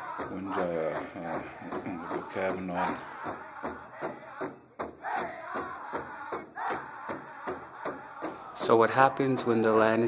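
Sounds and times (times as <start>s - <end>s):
steady drum beat: 0.0s - 10.0s
voices chanting: 0.0s - 10.0s.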